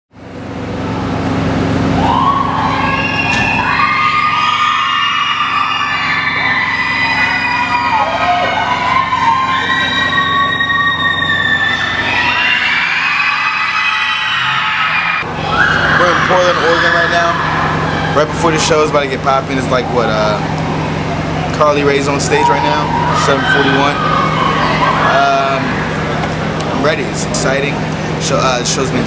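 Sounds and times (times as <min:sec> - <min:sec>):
steady low hum: 0:00.1 - 0:29.0
emergency vehicle siren wailing: 0:00.7 - 0:26.6.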